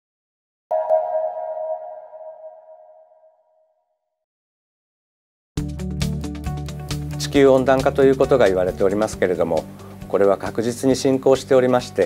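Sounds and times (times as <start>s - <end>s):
logo chime: 0.7s - 3.4s.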